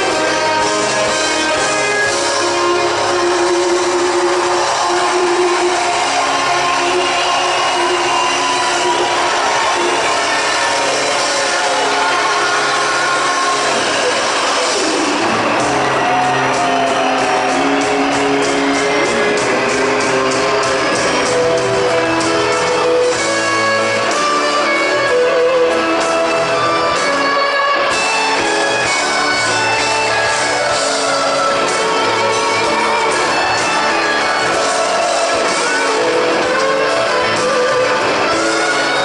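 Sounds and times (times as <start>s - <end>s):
live pop-rock band: 0.0s - 39.0s.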